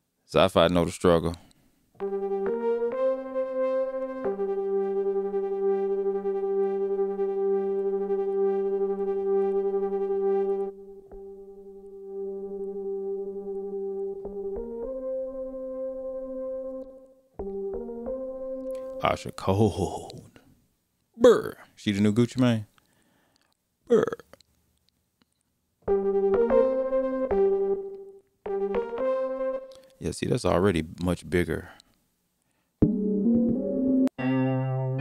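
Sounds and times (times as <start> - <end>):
sustained synthesizer chords: 2.0 - 19.0, 25.9 - 29.6.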